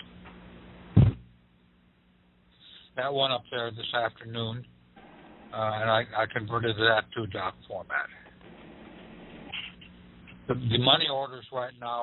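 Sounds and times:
faint steady hum: 0.0 - 12.0
loud thump: 1.0 - 1.2.

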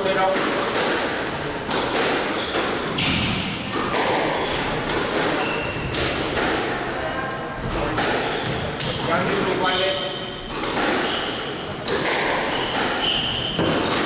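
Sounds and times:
squash ball hitting rackets and walls: 0.0 - 7.0, 7.6 - 14.0
shoes squeaking on wooden floor: 9.4 - 14.0.

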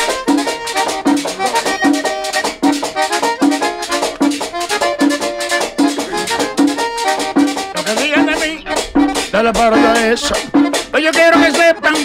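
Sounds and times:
accordion melody: 0.0 - 12.0
drum beat: 0.0 - 12.0
metal scraper rhythm: 0.0 - 12.0.

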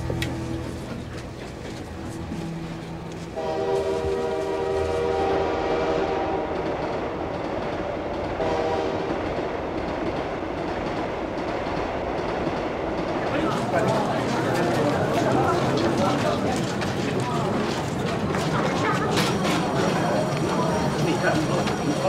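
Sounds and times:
train rumbling: 0.0 - 22.0
train horn blasts: 2.5 - 6.8, 8.4 - 9.2.

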